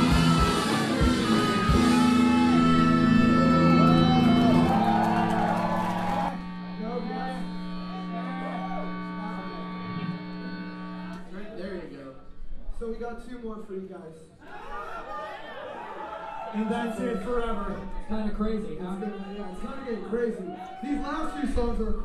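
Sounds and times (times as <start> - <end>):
crowd shouting and whooping: 0.0 - 6.8, 14.4 - 18.0, 18.8 - 21.7
ska-punk band with horns: 0.0 - 11.1.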